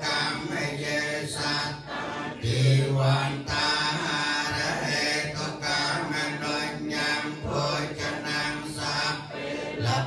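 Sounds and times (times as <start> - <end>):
group of voices chanting: 0.0 - 10.0.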